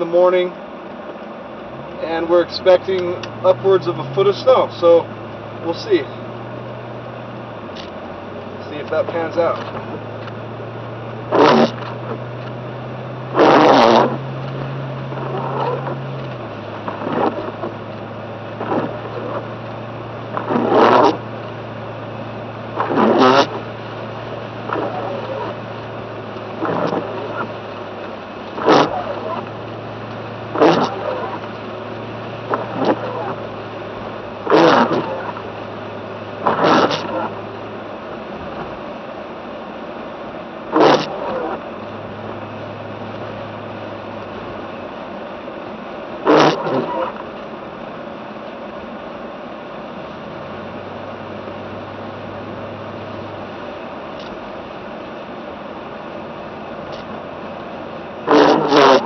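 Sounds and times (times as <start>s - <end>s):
engine and tyre hum: 0.0s - 59.0s
windshield wipers swishing: 0.0s - 59.0s.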